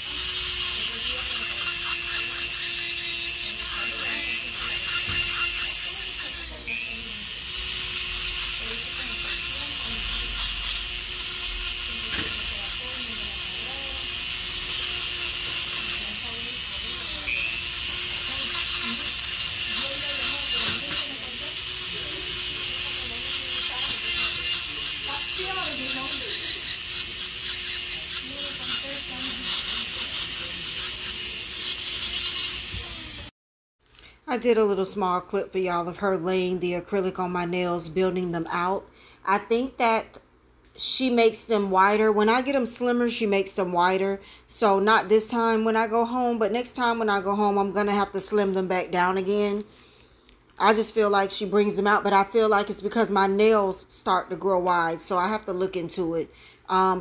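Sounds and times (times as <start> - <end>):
electric nail drill grinding: 0.0 - 33.3.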